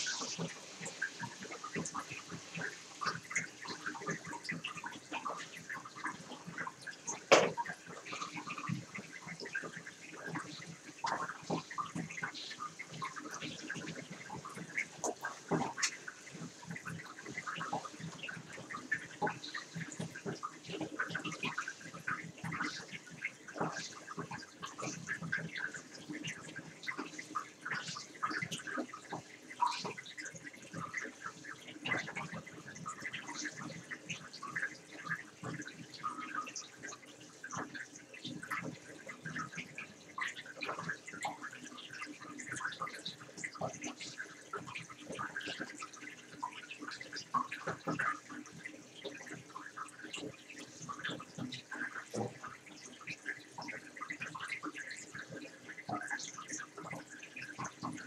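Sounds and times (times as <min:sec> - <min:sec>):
water trickling and splashing: 0:00.0 - 0:58.0.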